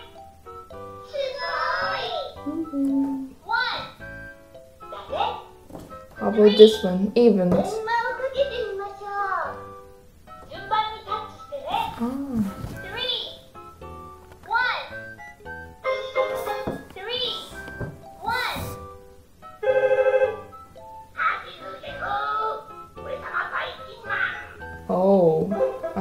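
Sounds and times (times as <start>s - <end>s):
sing-song cartoon voice: 1.4s - 3.3s
recorded voice from small speaker: 21.2s - 24.6s.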